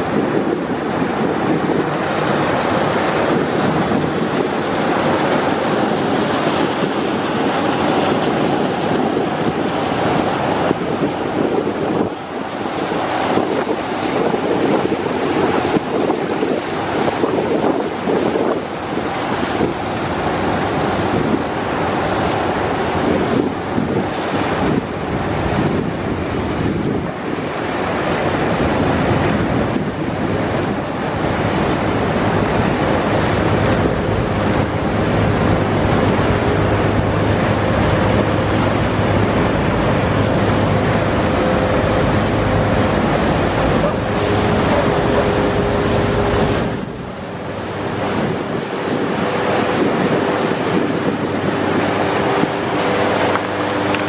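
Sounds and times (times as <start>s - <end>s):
ice crushing and water churning: 0.0s - 54.0s
steady engine hum: 0.0s - 54.0s
wind buffeting microphone: 0.0s - 54.0s.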